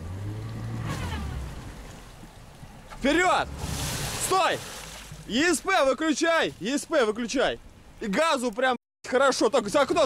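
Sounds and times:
car engine revving: 0:00.0 - 0:02.0
churning water: 0:00.0 - 0:08.5.

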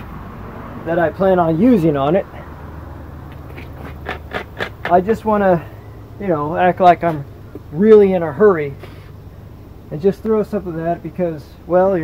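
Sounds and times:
low outdoor background noise: 0:00.0 - 0:12.0
man speaking: 0:00.8 - 0:02.4, 0:04.8 - 0:08.9, 0:09.9 - 0:12.0.

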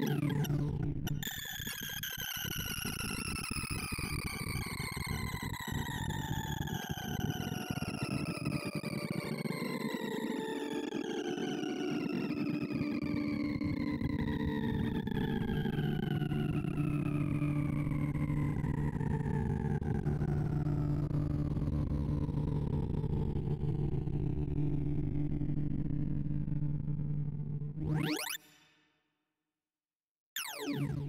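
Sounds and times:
low electronic hums: 0:15.2 - 0:27.9.

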